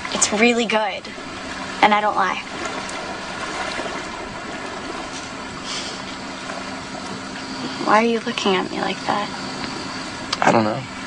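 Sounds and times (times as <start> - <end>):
even hiss: 0.0 - 11.0
faint low hum: 0.0 - 11.0.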